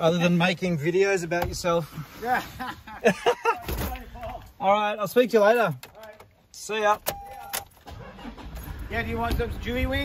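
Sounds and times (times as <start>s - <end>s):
car engine starting and running: 6.8s - 10.0s
short beep: 7.1s - 7.6s.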